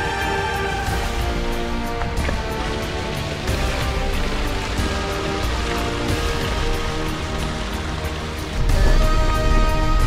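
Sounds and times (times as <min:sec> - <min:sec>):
background music: 0:00.0 - 0:10.0
stream water running and splashing: 0:00.0 - 0:10.0.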